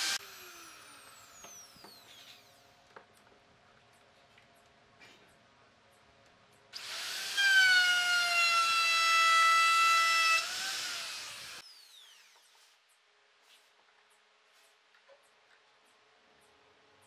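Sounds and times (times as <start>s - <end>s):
electric router cutting wood: 0.0s - 2.1s, 6.8s - 12.4s.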